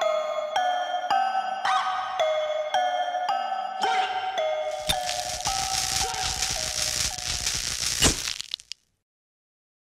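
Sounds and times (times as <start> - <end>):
crackling static hiss: 4.8 - 8.9.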